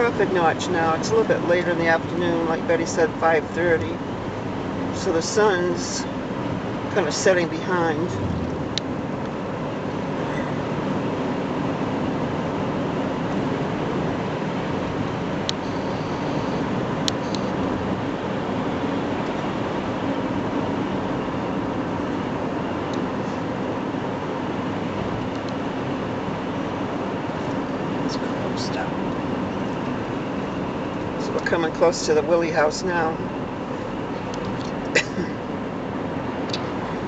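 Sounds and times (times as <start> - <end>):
car road and engine noise: 0.0 - 37.0.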